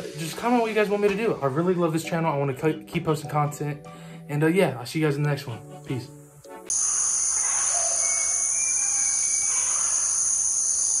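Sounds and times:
insect drone: 0:06.2 - 0:11.0
faint whistled bird calls: 0:06.8 - 0:10.6.

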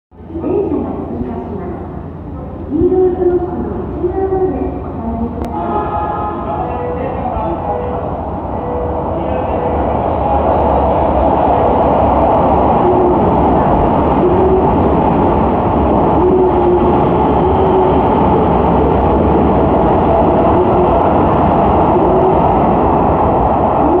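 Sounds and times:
train wheels rumbling on rails: 0:00.2 - 0:24.0.

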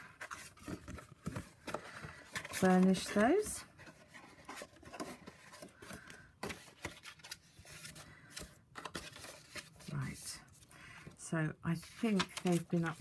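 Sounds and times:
cardstock rustling: 0:00.0 - 0:10.2, 0:11.7 - 0:13.0.

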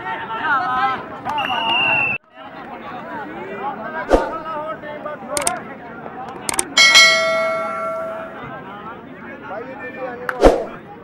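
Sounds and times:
faint crowd noise: 0:00.0 - 0:11.0
quick clicks: 0:05.4 - 0:05.6, 0:06.3 - 0:06.8
notification bell ding: 0:06.8 - 0:08.4.

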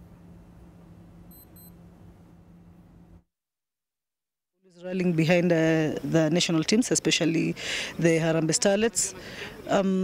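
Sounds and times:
steady low hum: 0:00.0 - 0:03.2
short high electronic beeps: 0:01.3 - 0:01.8.

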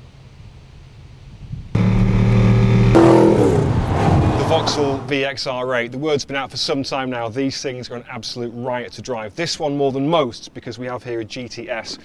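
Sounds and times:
car engine rumbling: 0:01.8 - 0:05.2.

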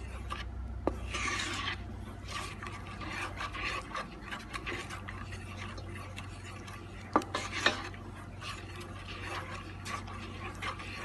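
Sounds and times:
steady low hum: 0:00.0 - 0:11.0
wooden spatula scraping pot: 0:00.0 - 0:11.0.

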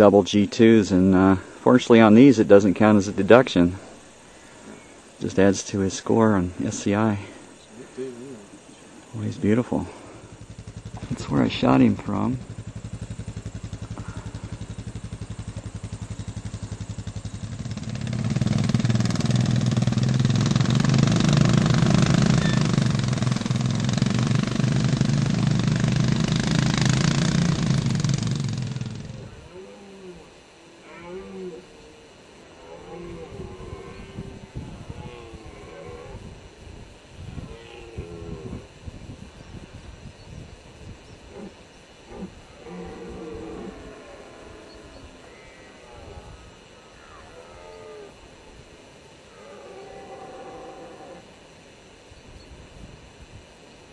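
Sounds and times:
engine running: 0:00.0 - 0:29.6
short pitched sounds: 0:09.7 - 0:30.3.

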